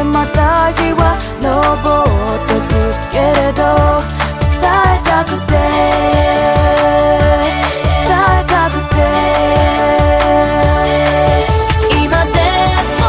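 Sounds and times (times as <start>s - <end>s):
sung vocal runs: 0.0s - 13.0s
held chords: 0.1s - 13.0s
kick drum beat: 3.8s - 13.0s.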